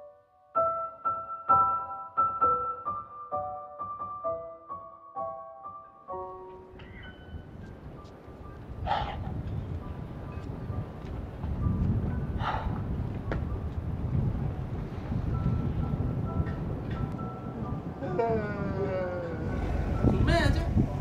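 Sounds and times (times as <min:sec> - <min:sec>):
soft piano music: 0:00.0 - 0:21.0
wind rumble on microphone: 0:06.8 - 0:21.0.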